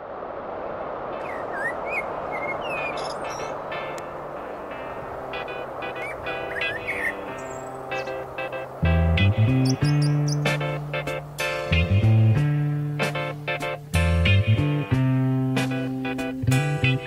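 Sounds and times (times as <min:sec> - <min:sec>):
steady rushing background: 0:00.0 - 0:14.1
birds chirping: 0:01.2 - 0:12.2
soft instrumental music: 0:03.4 - 0:17.0.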